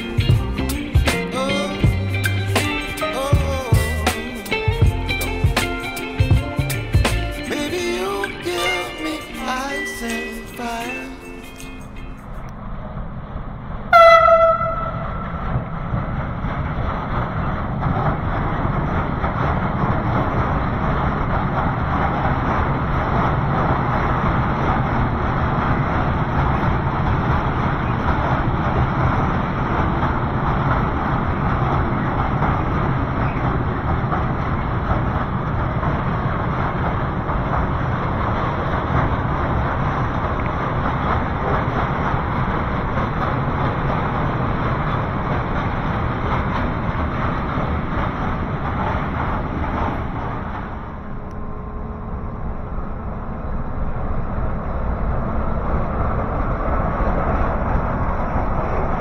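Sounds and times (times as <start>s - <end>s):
train rumble: 0.0s - 59.0s
locomotive horn toot: 13.9s - 15.5s.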